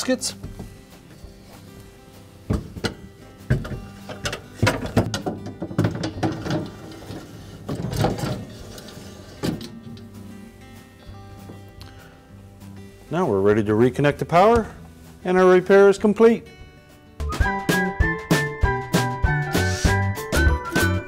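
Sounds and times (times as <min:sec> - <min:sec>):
background music: 0:00.0 - 0:21.0
wire shelves clattering: 0:02.6 - 0:10.2.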